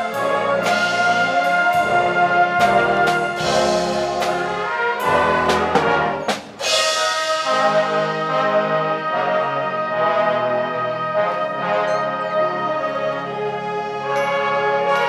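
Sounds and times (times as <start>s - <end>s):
concert band playing: 0.0s - 15.0s.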